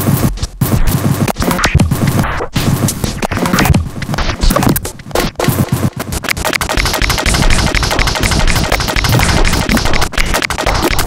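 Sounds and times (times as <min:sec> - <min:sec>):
modular synthesizer clicks and crackles: 0:00.0 - 0:11.0.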